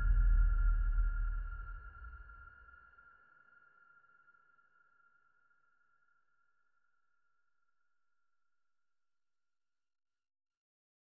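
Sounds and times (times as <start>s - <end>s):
deep bass boom: 0.0s - 2.4s
high sonar-like synthesizer tone: 0.0s - 5.4s.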